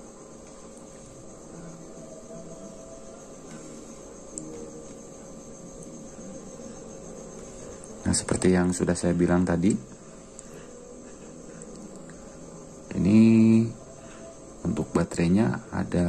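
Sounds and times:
insect chirring: 0.0s - 16.0s
low even hum: 0.0s - 16.0s.

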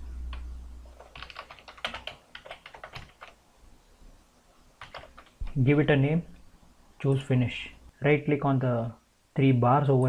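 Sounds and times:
typing on computer keyboard: 0.9s - 3.4s, 4.8s - 5.5s.

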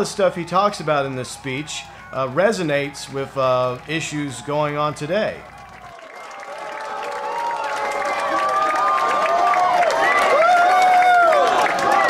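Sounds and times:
crowd applauding: 0.0s - 12.0s
crowd cheering and calling out: 0.0s - 12.0s.

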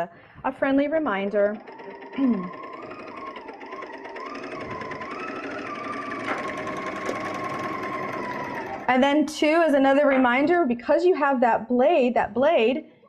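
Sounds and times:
motor whine: 1.2s - 9.0s.

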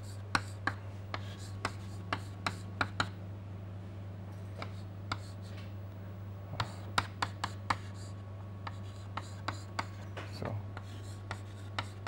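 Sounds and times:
chalk tapping on a chalkboard: 0.0s - 3.2s, 4.6s - 5.7s, 6.6s - 12.0s
low electrical hum: 0.0s - 12.0s.

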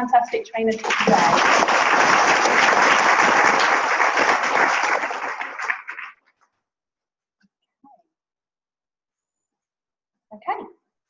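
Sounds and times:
audience applauding: 0.8s - 6.2s.

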